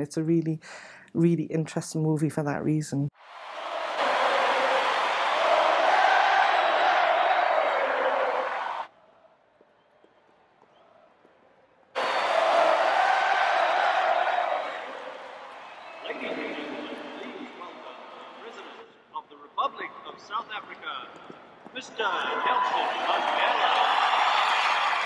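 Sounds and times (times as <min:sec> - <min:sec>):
stadium crowd cheering: 0:03.2 - 0:18.8, 0:21.8 - 0:25.0.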